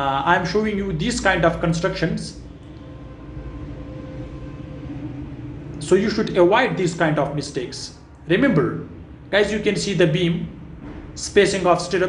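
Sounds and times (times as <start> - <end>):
faint steady hum: 0.0 - 12.0
steady low rumble: 0.0 - 12.0.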